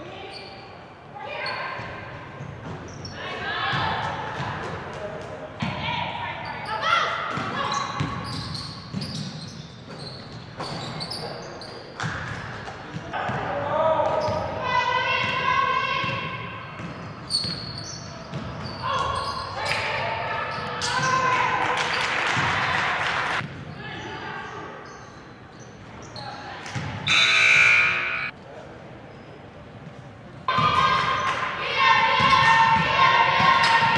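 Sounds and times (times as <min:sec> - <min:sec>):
indistinct shouting voices: 0:27.1 - 0:28.3, 0:30.5 - 0:33.9.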